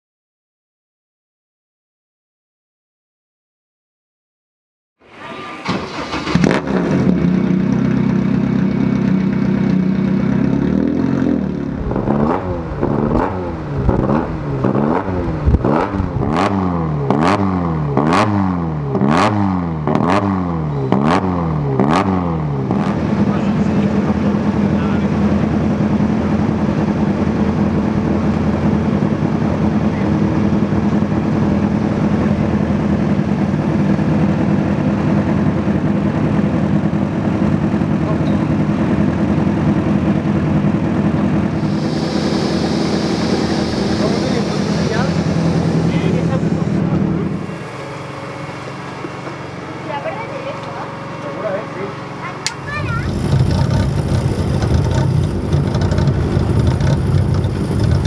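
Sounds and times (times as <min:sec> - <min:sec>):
racing car engine revving: 0:05.1 - 0:32.8, 0:35.3 - 0:50.4, 0:51.0 - 0:58.0.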